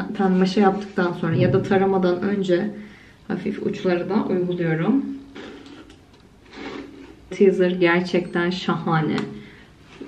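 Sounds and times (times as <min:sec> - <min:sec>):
person speaking: 0:01.2 - 0:02.6.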